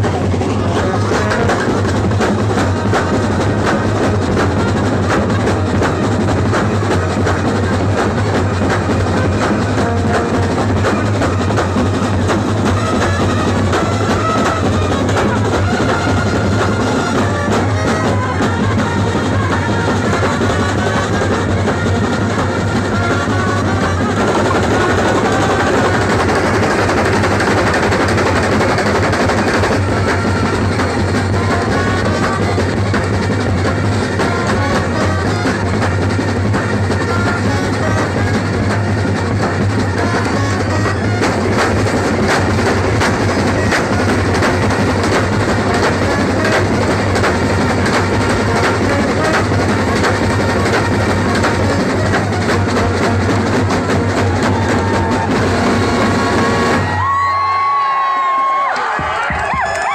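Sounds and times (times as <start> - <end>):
drum line playing: 0.0 - 59.9.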